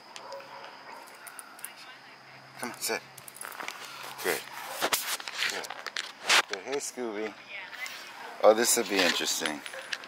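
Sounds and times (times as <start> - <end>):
dog barking faintly: 0.2 - 1.5, 8.0 - 10.0.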